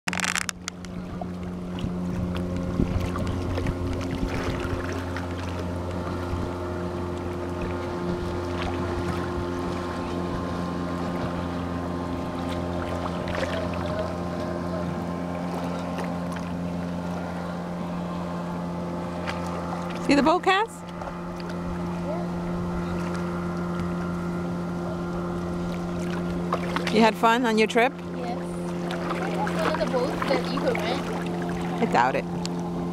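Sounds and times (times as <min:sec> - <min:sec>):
motorboat engine droning: 0:00.0 - 0:32.9
small waves washing: 0:00.1 - 0:32.9.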